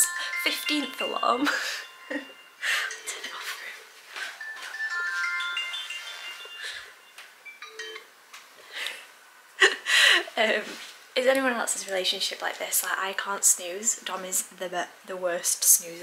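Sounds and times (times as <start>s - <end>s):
phone alarm chiming melody: 0.0s - 8.1s
breaths: 8.6s - 9.1s, 9.8s - 10.3s.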